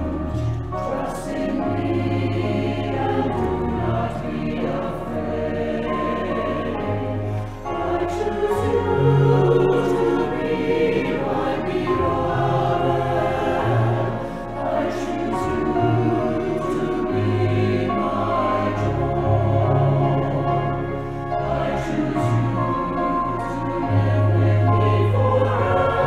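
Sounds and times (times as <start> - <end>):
choir singing: 0.0 - 26.0.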